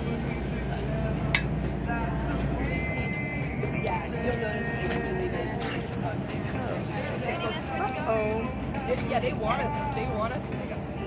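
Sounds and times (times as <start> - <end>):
boat engine rumbling: 0.0 - 11.0
passengers' voices: 0.0 - 11.0.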